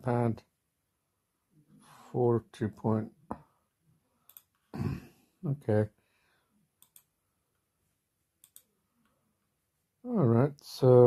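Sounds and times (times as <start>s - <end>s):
computer mouse clicks: 4.3s - 4.6s, 6.8s - 7.1s, 8.4s - 9.1s.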